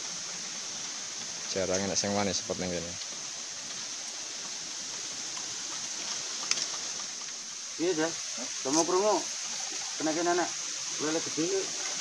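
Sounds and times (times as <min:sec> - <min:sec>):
flowing river water: 0:00.0 - 0:12.0.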